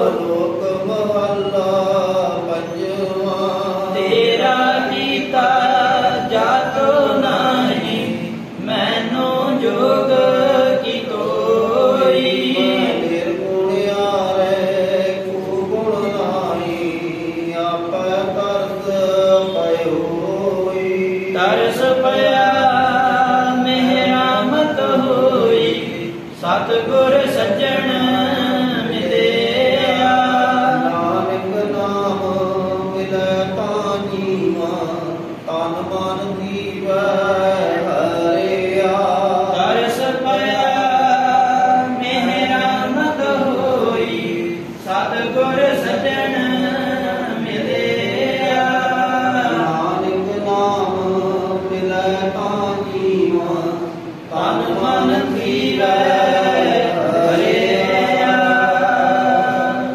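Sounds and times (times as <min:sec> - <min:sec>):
men chanting through microphones: 0:00.0 - 0:59.9.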